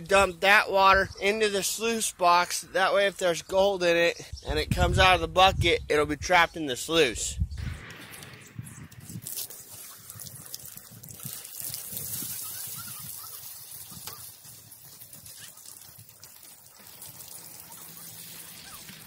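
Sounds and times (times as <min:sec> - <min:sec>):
muddy water pouring from a bucket: 0:08.9 - 0:19.0.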